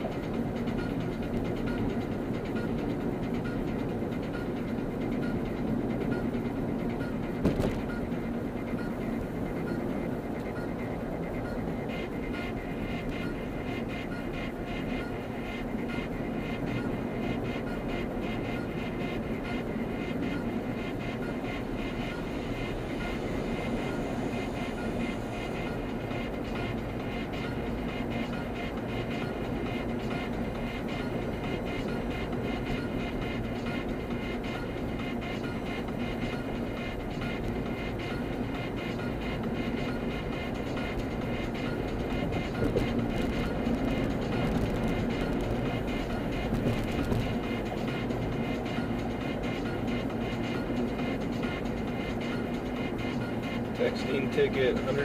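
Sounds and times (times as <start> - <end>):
car road and engine noise: 0.0 - 55.0
music playing: 0.0 - 55.0.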